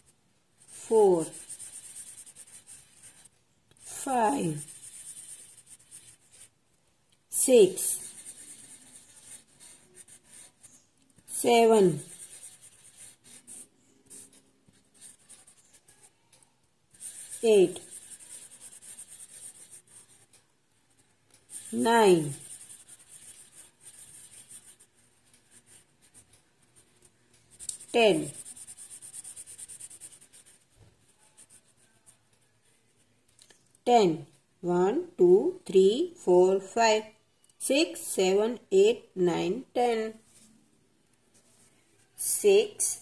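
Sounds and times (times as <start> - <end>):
marker scribbling on paper: 0.0 - 6.5, 7.3 - 16.1, 16.9 - 20.3, 20.9 - 32.9.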